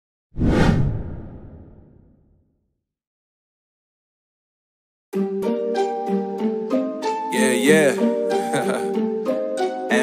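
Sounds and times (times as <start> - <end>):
whoosh with deep rumble: 0.4 - 2.2.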